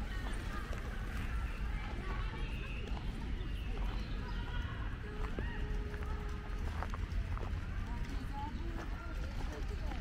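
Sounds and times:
distant voices: 0.0s - 10.0s
footsteps on gravel: 0.0s - 10.0s.

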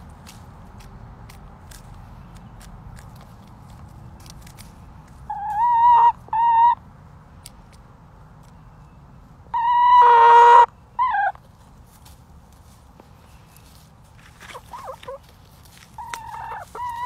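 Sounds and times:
hens calling: 5.2s - 6.8s, 9.5s - 11.4s, 14.4s - 15.3s, 15.9s - 17.0s.

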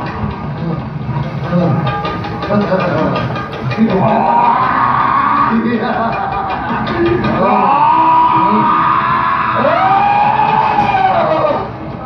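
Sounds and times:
performer's long drawn-out cries: 3.9s - 6.2s, 7.1s - 11.7s.

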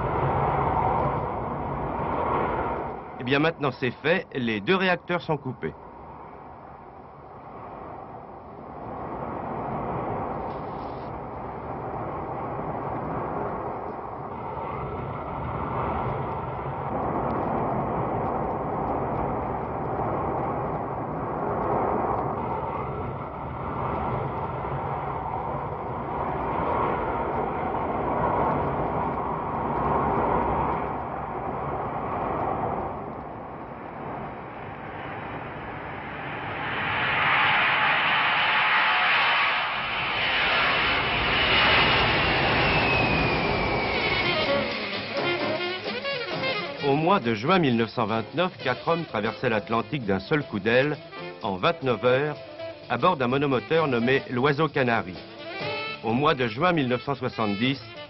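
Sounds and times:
high engine whine: 0.0s - 58.0s
jet engines rushing in cabin: 0.0s - 58.0s.

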